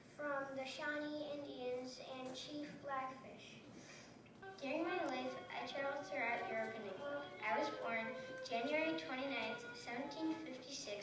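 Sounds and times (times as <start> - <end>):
boy singing into a microphone: 4.4 - 11.0.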